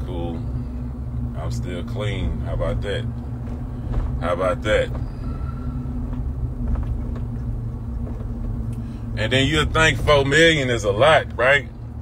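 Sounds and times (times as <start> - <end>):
truck cabin road and engine rumble: 0.0 - 12.0.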